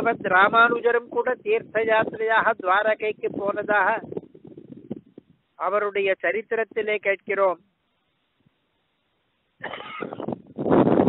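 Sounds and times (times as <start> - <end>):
man clearing his throat: 9.6 - 10.3.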